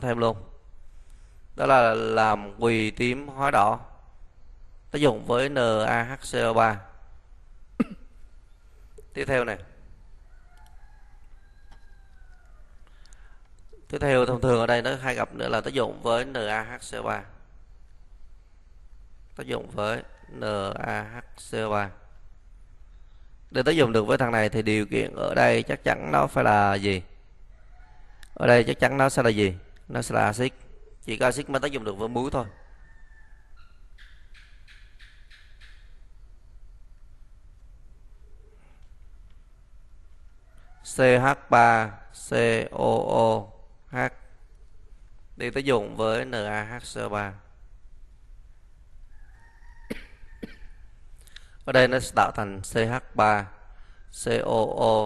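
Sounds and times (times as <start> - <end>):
faint drawn-out pitched call: 7.7 - 29.2, 29.9 - 36.9, 38.2 - 47.6, 49.1 - 52.4.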